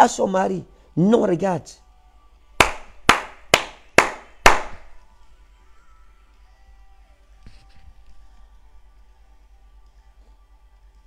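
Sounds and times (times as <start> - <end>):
sharp hand claps: 2.6 - 5.0.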